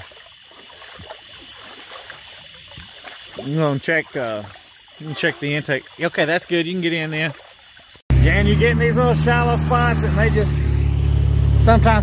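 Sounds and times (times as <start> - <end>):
person wading in water: 0.0 - 8.0
water trickling around boat hull: 0.0 - 8.0.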